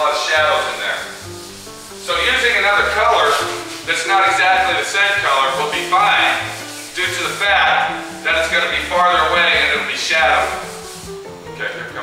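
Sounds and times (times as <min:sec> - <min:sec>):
hand rubbing coarse fiberglass: 0:00.0 - 0:12.0.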